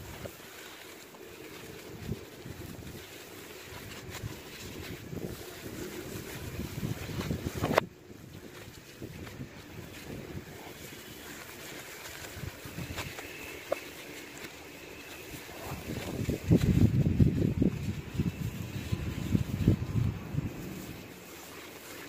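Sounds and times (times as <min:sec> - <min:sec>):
charcoal crumbling and rustling: 0:00.0 - 0:22.0.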